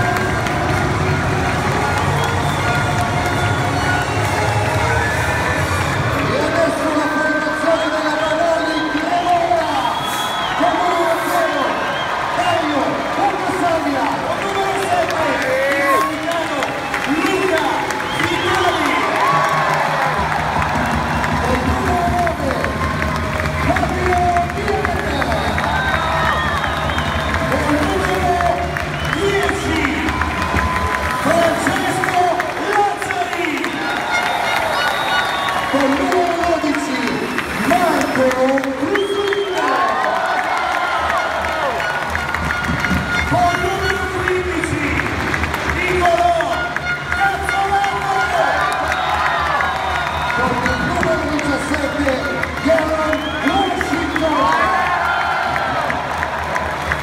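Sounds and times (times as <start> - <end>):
crowd cheering and applauding: 0.0 - 57.0
announcer calling out names: 6.2 - 10.0, 27.4 - 30.2, 31.2 - 40.1, 43.2 - 45.1, 45.7 - 48.7.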